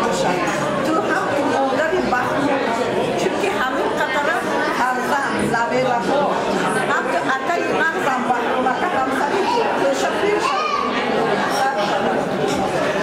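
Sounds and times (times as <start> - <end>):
woman speaking into microphone: 0.0 - 10.5
people chattering: 0.0 - 13.0.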